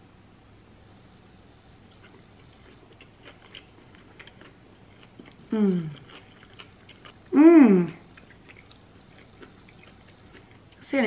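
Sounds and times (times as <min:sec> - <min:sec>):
person chewing crunchy food: 0:01.8 - 0:10.8.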